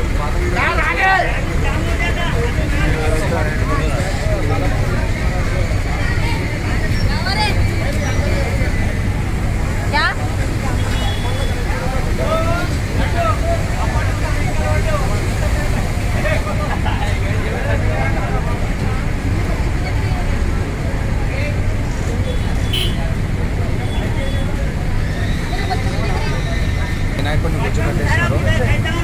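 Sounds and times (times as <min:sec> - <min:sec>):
crowd talking: 0:00.0 - 0:29.0
heavy vehicle engine running: 0:00.0 - 0:29.0.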